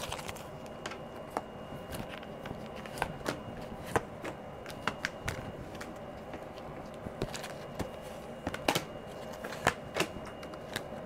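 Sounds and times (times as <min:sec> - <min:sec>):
cards clicking and tapping: 0:00.0 - 0:06.4, 0:07.2 - 0:10.9.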